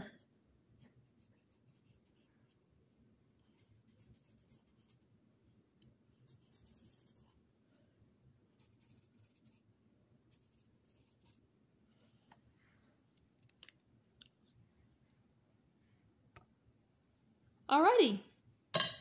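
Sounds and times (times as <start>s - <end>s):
marker scratching on paper: 0.0s - 2.6s, 3.4s - 5.0s, 6.1s - 7.4s, 8.5s - 9.6s, 10.3s - 11.4s.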